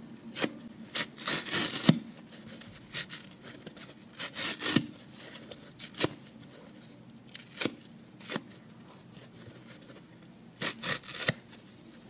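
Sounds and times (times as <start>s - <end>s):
sponge foam tearing: 0.3s - 2.1s, 4.1s - 4.9s, 10.5s - 11.5s.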